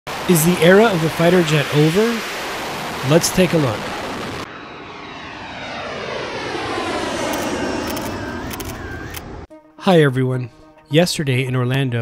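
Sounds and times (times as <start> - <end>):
fighter jet engines passing: 0.1 - 9.5
sharp clicks: 7.3 - 9.4.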